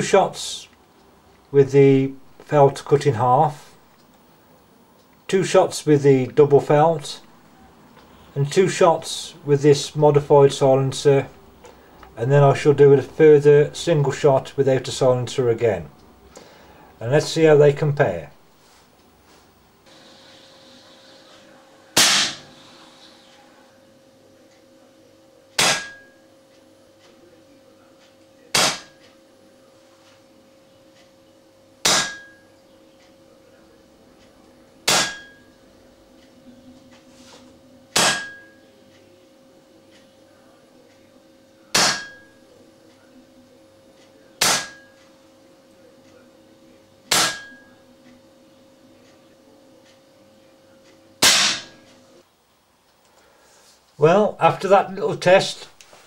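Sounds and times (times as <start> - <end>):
air rifle shots: 22.0 - 22.4.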